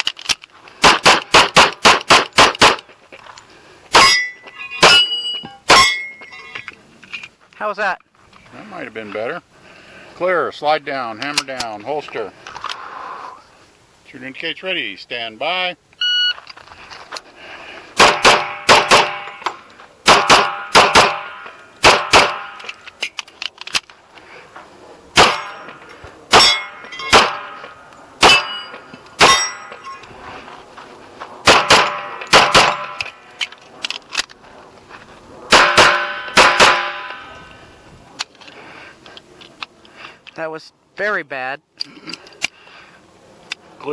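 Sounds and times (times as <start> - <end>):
pistol shots: 0.8 - 2.8, 18.0 - 19.4, 20.0 - 22.6, 25.2 - 25.7, 26.3 - 28.6, 31.4 - 33.1, 35.5 - 37.2.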